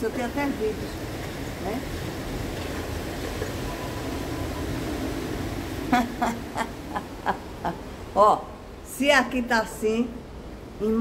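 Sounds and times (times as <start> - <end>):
background noise: 0.0 - 11.0
woman laughing: 5.9 - 7.9.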